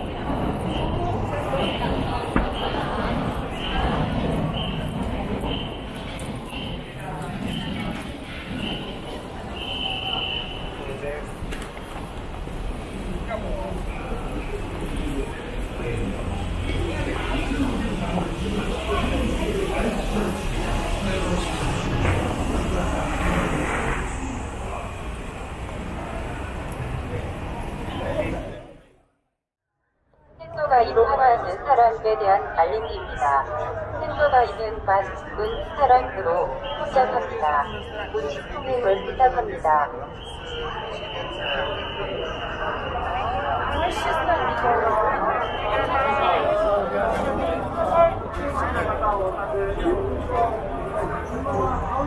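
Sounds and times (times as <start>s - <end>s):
crowd talking: 0.0s - 29.0s, 30.4s - 52.0s
car passing: 15.8s - 28.8s.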